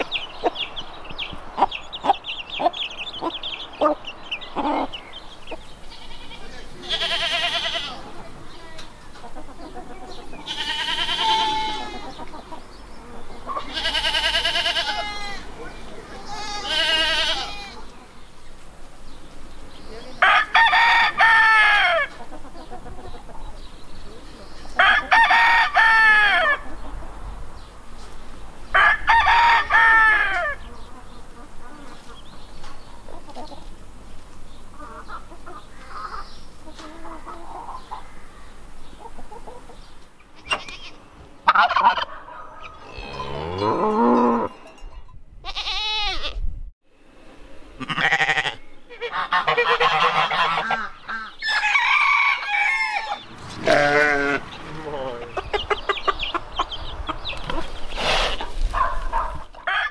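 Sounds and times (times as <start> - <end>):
chickens clucking: 0.0 - 44.8, 47.7 - 59.9
rooster crowing: 20.2 - 22.2, 24.8 - 26.7, 28.7 - 30.7, 49.2 - 54.5, 59.6 - 59.9.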